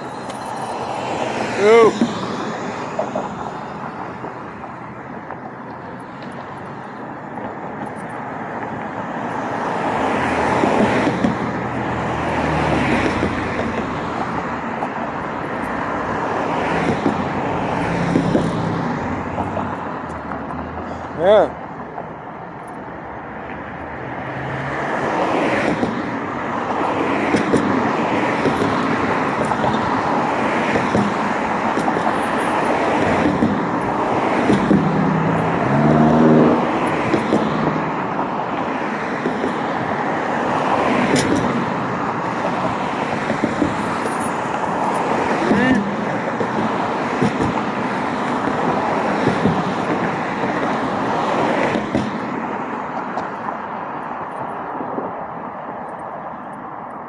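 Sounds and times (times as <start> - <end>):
road traffic: 0.0 - 57.0
vehicle passing: 9.3 - 21.5, 23.0 - 26.0, 26.6 - 52.5.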